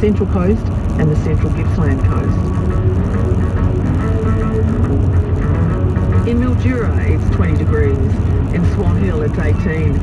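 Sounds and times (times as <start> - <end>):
car radio music: 0.0 - 10.0
road and engine noise: 0.0 - 10.0.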